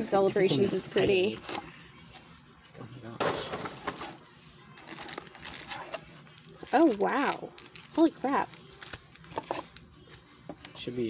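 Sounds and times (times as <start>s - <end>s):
foil and cardboard rustling: 3.2s - 10.2s.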